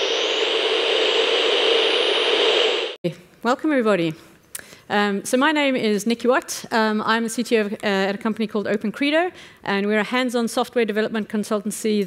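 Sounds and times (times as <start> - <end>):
loud steady rushing noise: 0.0 - 3.0.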